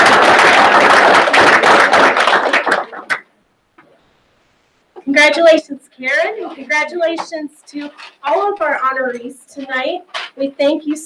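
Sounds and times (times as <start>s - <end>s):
small crowd clapping: 0.0s - 3.9s.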